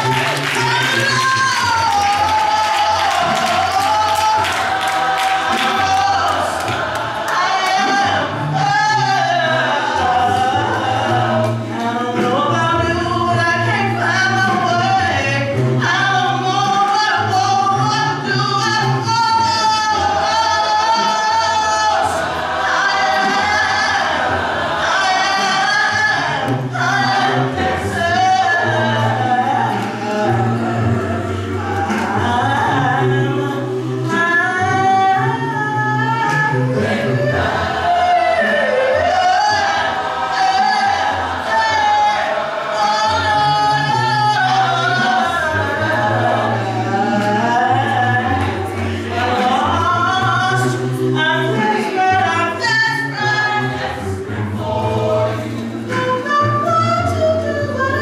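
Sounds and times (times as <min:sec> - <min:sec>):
choir singing gospel: 0:00.0 - 0:58.0.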